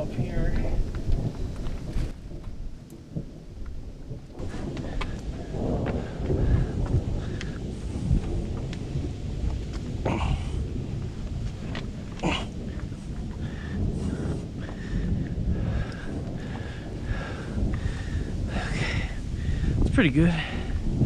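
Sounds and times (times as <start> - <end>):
low rumble: 0.0 - 21.0.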